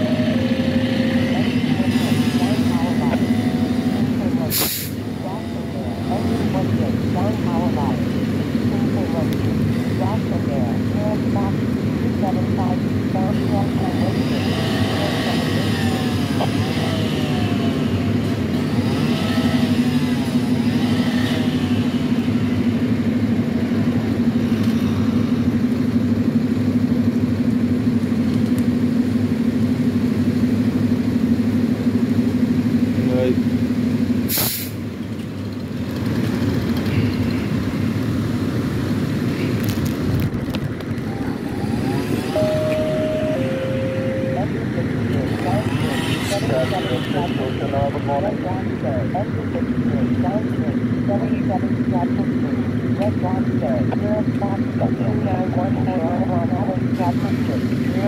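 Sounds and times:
truck engine idling: 0.0 - 58.0
air hiss: 4.5 - 5.0, 34.3 - 34.8.

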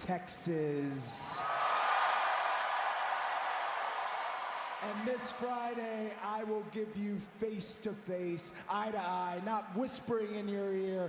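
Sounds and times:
crowd cheering: 1.0 - 6.4.

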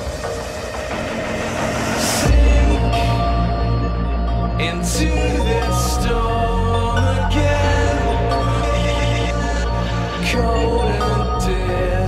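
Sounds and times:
electronic breakbeat music: 0.0 - 12.0.

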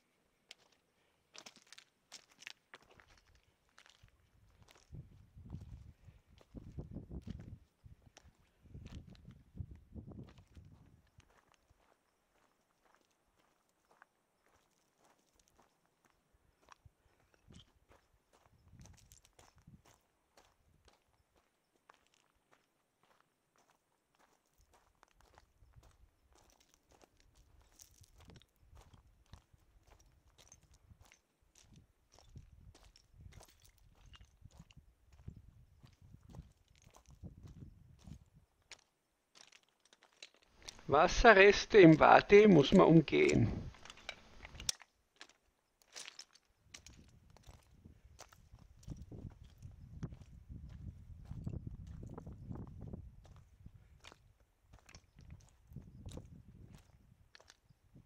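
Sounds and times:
footsteps crunching over stones: 0.5 - 9.3, 17.5 - 52.6, 53.2 - 57.7.

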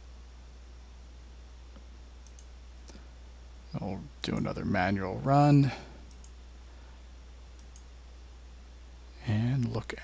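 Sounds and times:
low electrical hum: 0.0 - 10.0
computer mouse clicks: 1.7 - 3.1, 6.0 - 6.4, 7.5 - 7.9.

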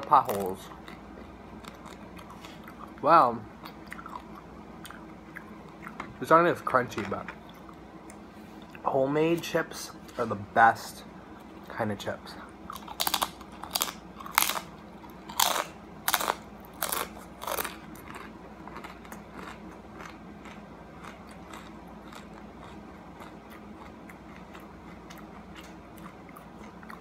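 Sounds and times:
chip being crunched and chewed: 0.0 - 3.0, 12.7 - 27.0.

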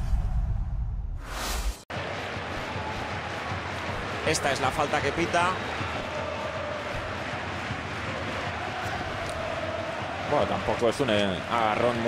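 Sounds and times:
stadium crowd murmur: 1.9 - 12.0.

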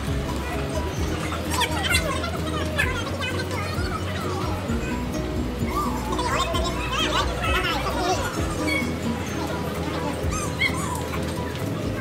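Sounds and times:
background music in a mall: 0.0 - 12.0.

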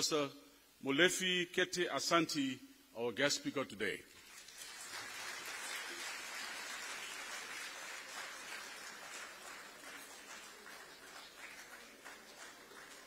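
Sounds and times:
audience applauding: 4.2 - 13.0.

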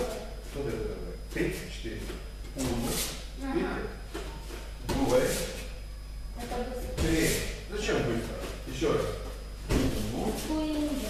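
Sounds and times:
bare feet on mat: 6.8 - 7.6, 8.2 - 11.0.

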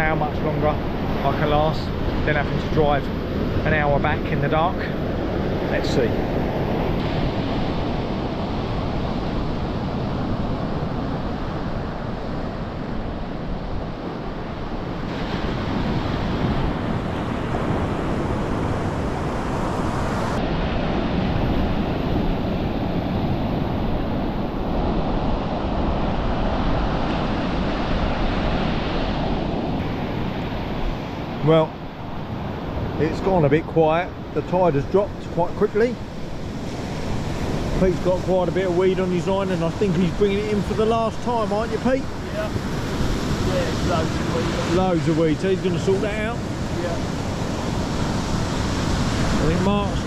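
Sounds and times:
waves breaking on beach: 0.0 - 50.0
wind rumbling on microphone: 0.0 - 50.0.

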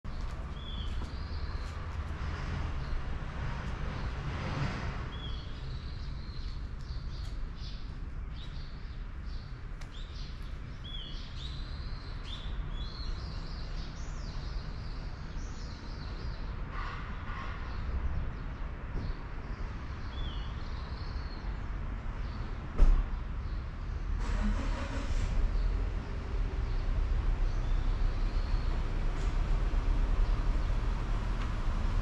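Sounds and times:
small birds chirping: 0.1 - 4.2, 5.1 - 16.6.

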